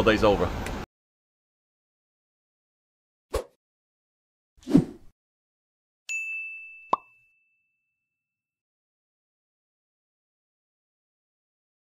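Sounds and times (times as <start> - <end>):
high ding: 6.1 - 8.1.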